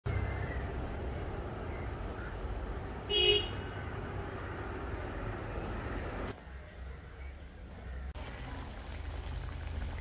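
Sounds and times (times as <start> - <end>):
high vehicle horn toot: 3.1 - 3.8.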